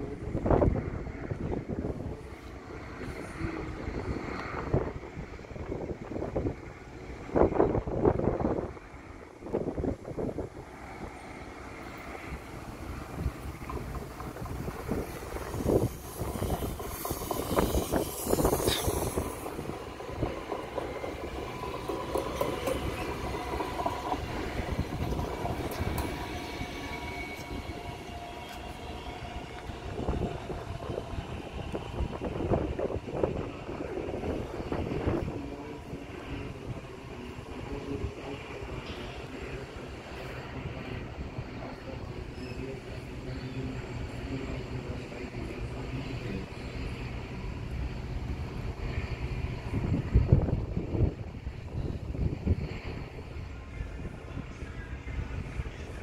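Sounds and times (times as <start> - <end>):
train wheels rumbling on rails: 0.0 - 56.0.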